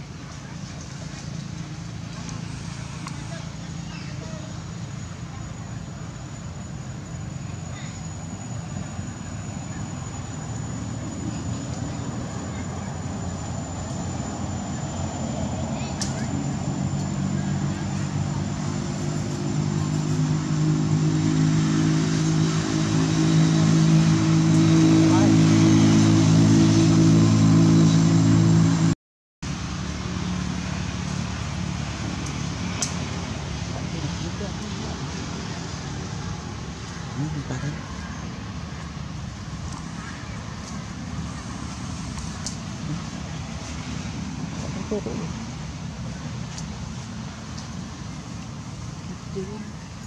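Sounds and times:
vehicle engine hum: 0.0s - 50.0s.

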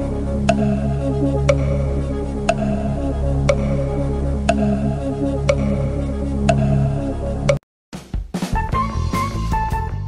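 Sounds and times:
background music loop: 0.0s - 7.6s
countdown timer ticks: 0.0s - 7.6s.

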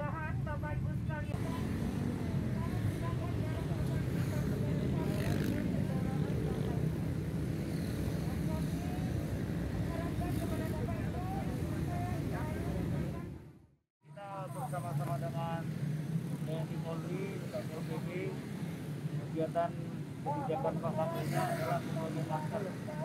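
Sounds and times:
people talking: 0.0s - 7.0s, 9.8s - 13.5s, 19.4s - 23.0s.

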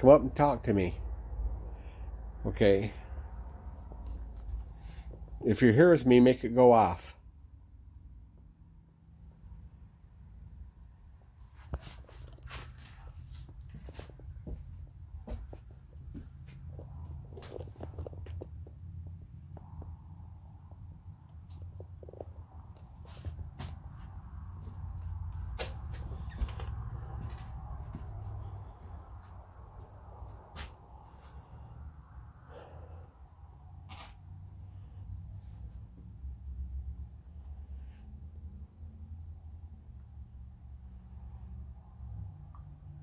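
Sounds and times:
handling rumble: 11.6s - 20.2s, 21.4s - 31.4s.

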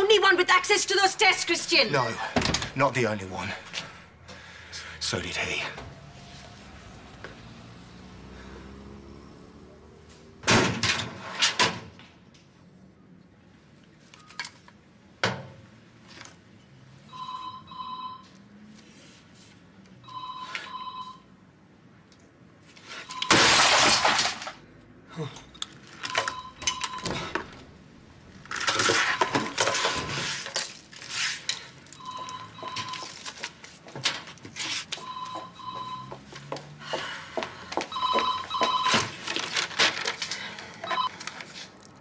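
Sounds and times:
telephone ringing: 17.1s - 18.4s, 20.0s - 21.4s, 23.0s - 23.5s, 26.0s - 27.6s, 32.0s - 33.2s, 35.0s - 36.3s, 37.9s - 39.2s, 40.8s - 41.2s.

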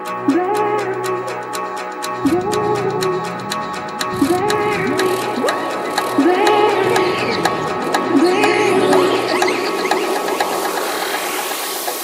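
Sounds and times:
electronic dance music breakdown: 2.2s - 12.0s.

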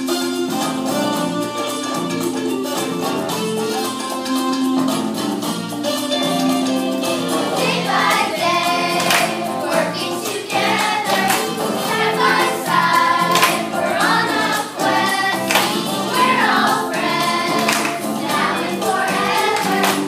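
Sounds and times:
instrumental accompaniment: 0.0s - 20.0s
steady percussive beat: 0.0s - 20.0s
children singing: 7.2s - 20.0s.

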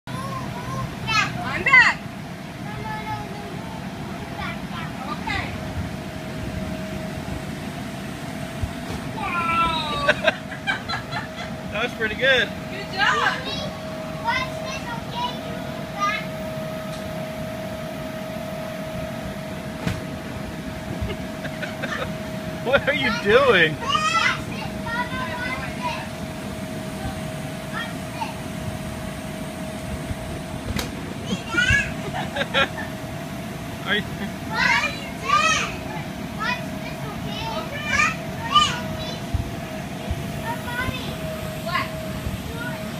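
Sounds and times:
blower fan humming: 0.0s - 42.9s.

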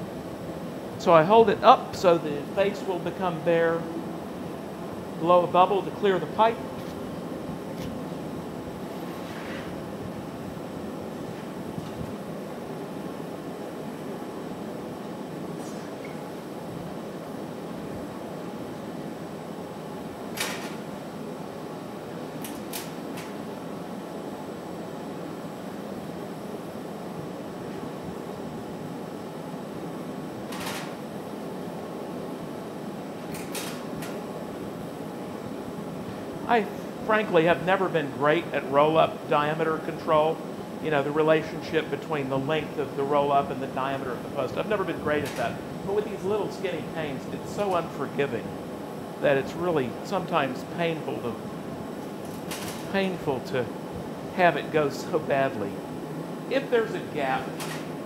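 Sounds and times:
gas furnace and ventilation roar: 0.0s - 58.0s.

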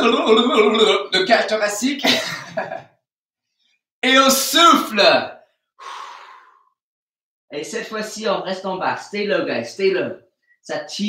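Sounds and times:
man exhaling: 5.8s - 6.8s.

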